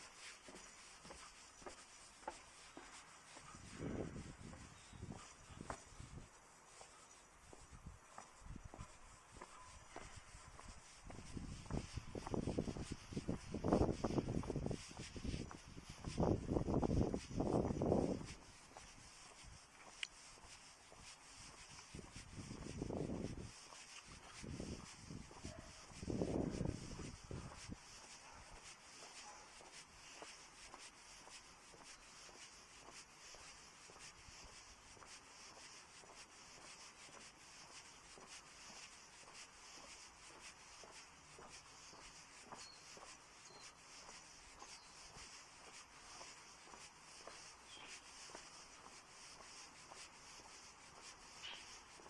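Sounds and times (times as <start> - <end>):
faint steady hiss: 0.0 - 52.0
footsteps on asphalt: 0.0 - 52.0.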